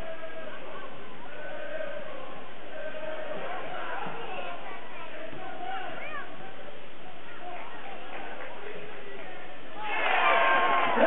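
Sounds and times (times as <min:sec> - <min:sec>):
crowd din: 0:00.0 - 0:11.0.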